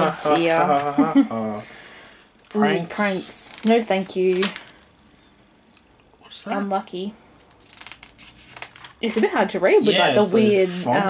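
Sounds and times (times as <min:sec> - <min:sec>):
magazine pages turning: 0:03.4 - 0:04.8, 0:07.5 - 0:09.0.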